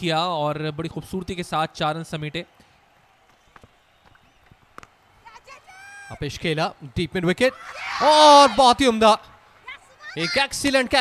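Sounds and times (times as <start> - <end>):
players shouting: 7.3 - 11.0.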